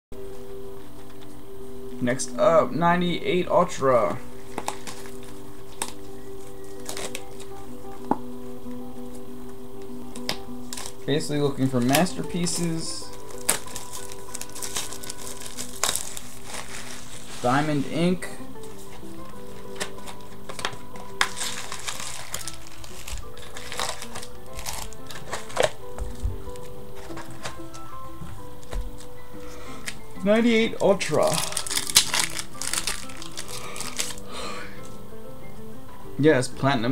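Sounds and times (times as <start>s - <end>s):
sustained background music chord: 0.2s - 36.9s
card packs crinkling: 4.0s - 7.7s, 10.2s - 34.9s.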